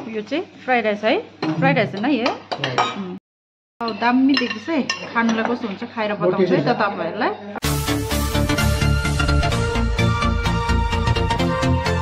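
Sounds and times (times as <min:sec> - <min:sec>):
cutlery clinking on plates: 0:03.8 - 0:05.8.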